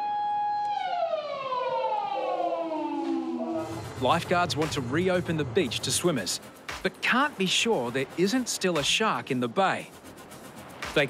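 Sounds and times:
shark alarm siren winding down: 0:00.0 - 0:04.8.

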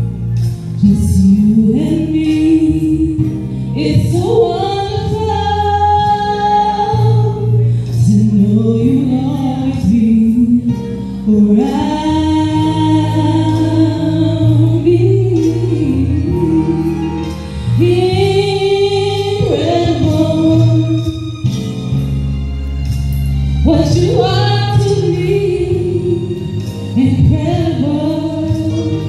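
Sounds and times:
woman singing a slow song: 0:00.0 - 0:21.3, 0:23.6 - 0:29.0
instrumental accompaniment: 0:00.0 - 0:29.0.

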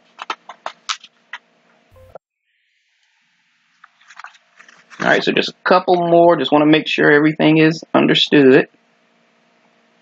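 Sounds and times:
paper crackling and rustling: 0:00.0 - 0:01.2, 0:03.8 - 0:05.2.

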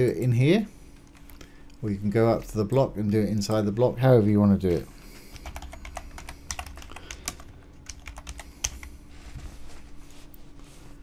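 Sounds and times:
faint steady hum: 0:00.0 - 0:11.0
computer keyboard typing: 0:05.3 - 0:08.9.

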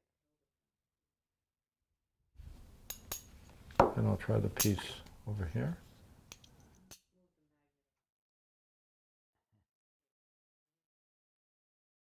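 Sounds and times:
faint room noise: 0:02.4 - 0:07.8.

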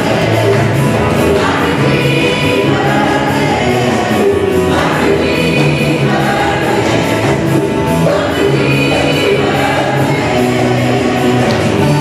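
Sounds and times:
band of piano drums and guitars: 0:00.0 - 0:12.0
singers and choir singing: 0:00.0 - 0:12.0.

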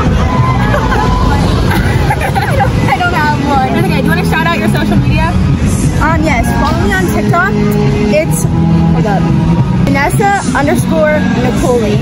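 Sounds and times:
girls talking and laughing: 0:00.0 - 0:12.0.

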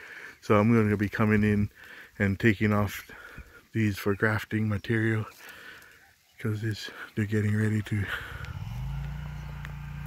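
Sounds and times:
vehicle engine humming: 0:07.3 - 0:10.0.

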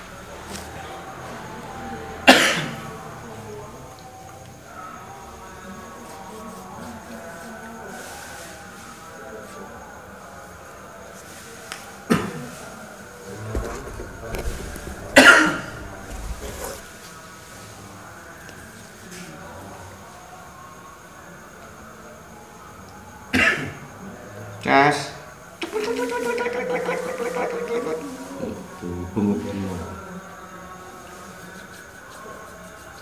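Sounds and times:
person coughing: 0:02.3 - 0:02.7, 0:15.2 - 0:15.7.

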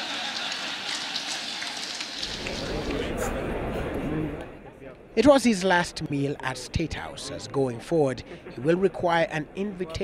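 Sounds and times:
audience applauding: 0:00.0 - 0:03.1.

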